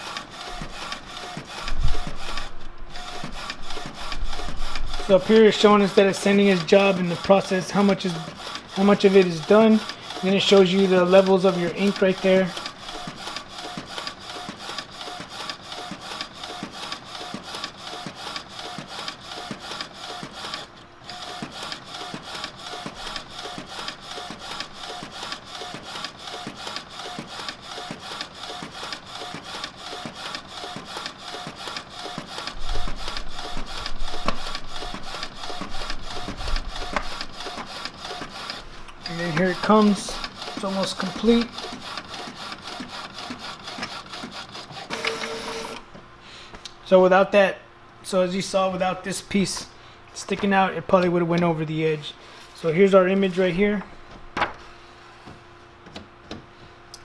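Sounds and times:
inkjet printer print head shuttling: 0:00.0 - 0:45.9.

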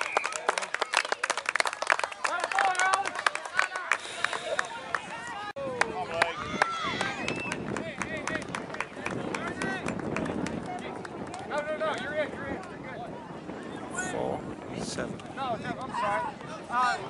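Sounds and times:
people talking and calling outdoors: 0:00.0 - 0:17.0.

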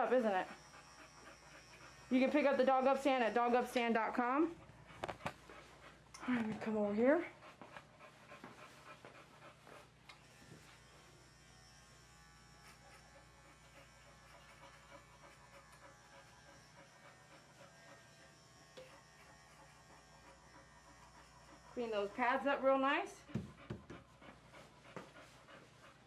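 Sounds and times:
electric pet clipper running: 0:00.0 - 0:04.4, 0:10.1 - 0:23.8.

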